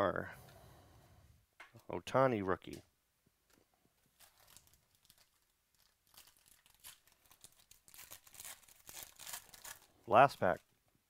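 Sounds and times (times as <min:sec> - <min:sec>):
foil wrapper crinkling: 0:04.1 - 0:10.6.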